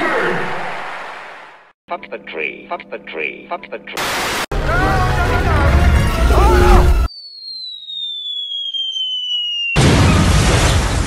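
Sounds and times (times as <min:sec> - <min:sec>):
falling bomb whistle: 0:06.2 - 0:10.8
loud explosion: 0:09.8 - 0:11.0.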